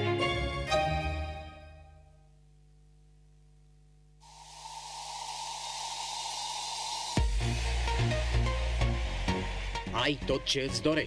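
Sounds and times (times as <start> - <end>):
white noise hiss: 2.2 - 9.8
thin steady tone: 4.2 - 8.0.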